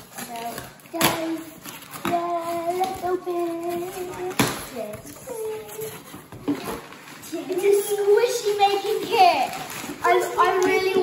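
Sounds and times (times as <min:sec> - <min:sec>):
packing paper rustling: 0:00.0 - 0:11.0.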